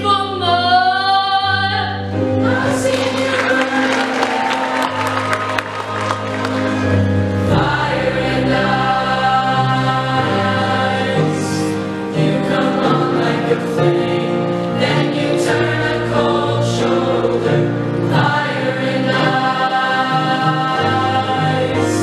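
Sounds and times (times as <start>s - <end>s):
mixed choir singing in harmony: 1.8s - 22.0s.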